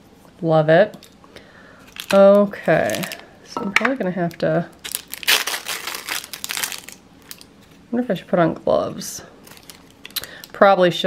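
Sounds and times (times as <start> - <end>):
plastic wrapper crinkling: 1.9 - 3.2, 4.2 - 7.8, 9.4 - 10.5.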